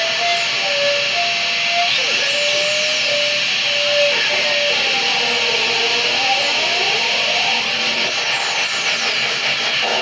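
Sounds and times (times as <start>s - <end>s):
wavering electronic tones: 0.0s - 9.2s
hiss and static: 2.7s - 10.0s.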